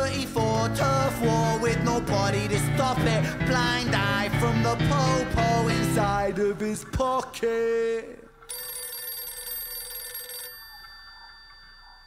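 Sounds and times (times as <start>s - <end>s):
telephone ringing: 8.4s - 12.0s.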